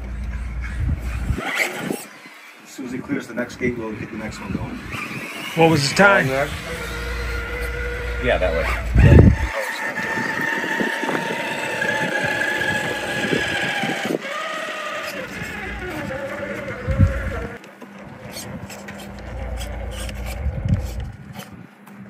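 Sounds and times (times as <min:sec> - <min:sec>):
electric motor whining: 0:00.0 - 0:21.7.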